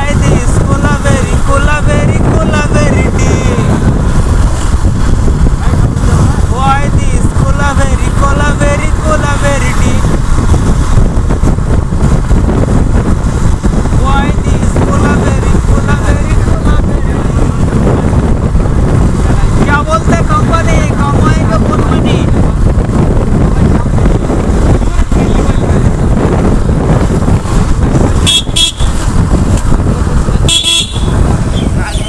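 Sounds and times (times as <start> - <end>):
motorcycle engine running: 0.0 - 32.0
road noise: 0.0 - 32.0
wind buffeting microphone: 0.0 - 32.0.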